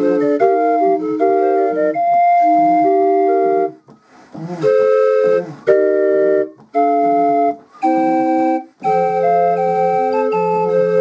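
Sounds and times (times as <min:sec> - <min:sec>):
hand-cranked organ playing chords: 0:00.0 - 0:11.0.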